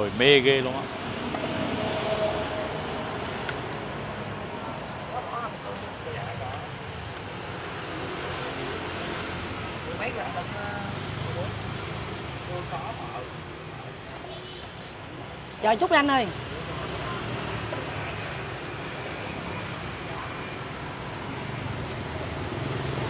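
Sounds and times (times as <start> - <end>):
street traffic hum: 0.0 - 23.0.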